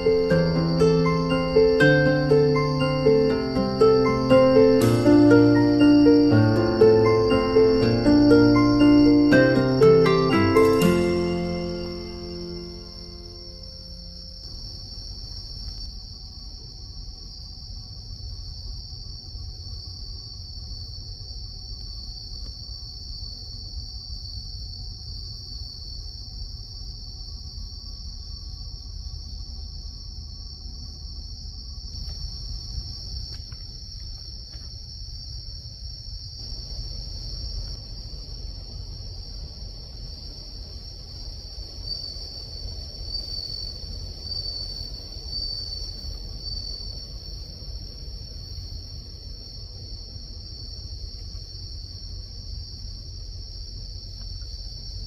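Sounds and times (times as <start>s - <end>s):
crickets chirring: 0.0s - 55.0s.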